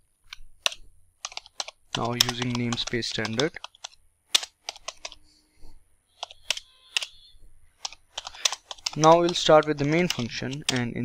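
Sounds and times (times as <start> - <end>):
computer keyboard key clicks: 0.6 - 5.2, 7.8 - 10.9.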